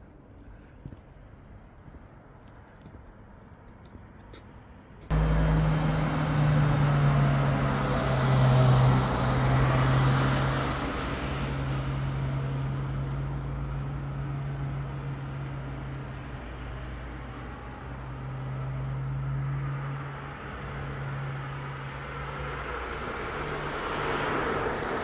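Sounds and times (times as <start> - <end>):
vehicle engine running: 5.1 - 16.9.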